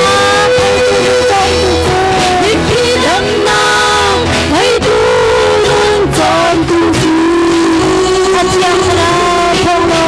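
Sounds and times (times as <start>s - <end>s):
electric bass: 0.0s - 10.0s
electric guitar: 0.0s - 10.0s
women singing a long note: 0.0s - 10.0s.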